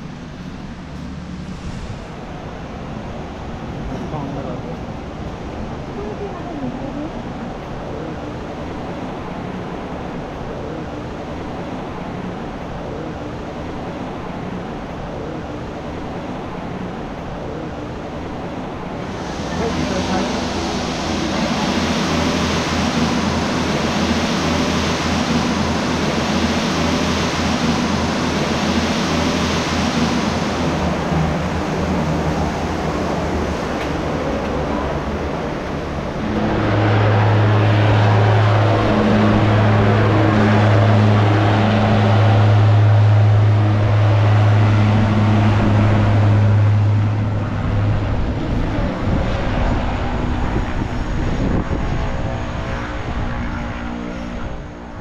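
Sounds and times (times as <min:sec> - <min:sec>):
low propeller hum: 0:00.0 - 0:55.0
turboprop aircraft engines running: 0:00.0 - 0:55.0.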